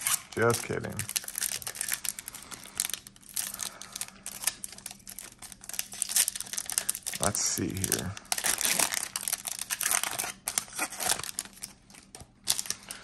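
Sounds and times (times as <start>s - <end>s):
foil wrapper crinkling and tearing: 0.0s - 13.0s.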